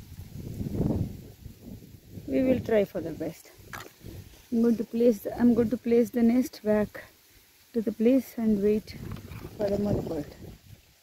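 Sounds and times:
wind buffeting microphone: 0:00.0 - 0:06.1, 0:08.5 - 0:10.9.

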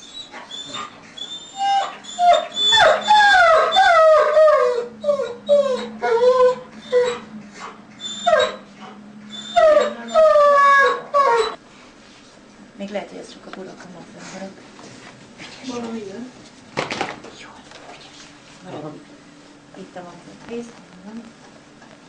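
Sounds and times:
dog whining: 0:00.0 - 0:11.6.

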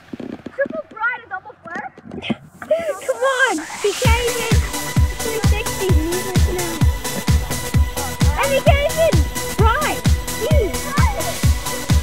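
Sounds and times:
children calling out: 0:02.7 - 0:06.8, 0:08.1 - 0:11.5.

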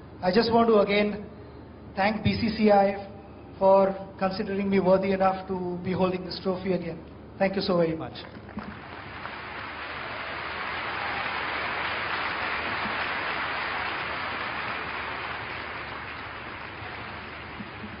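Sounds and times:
audience applauding: 0:08.4 - 0:18.0.

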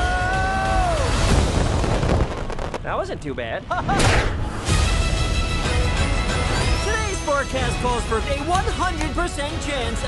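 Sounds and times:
film score music: 0:00.0 - 0:10.0
low rumble of action effects: 0:01.2 - 0:04.7.

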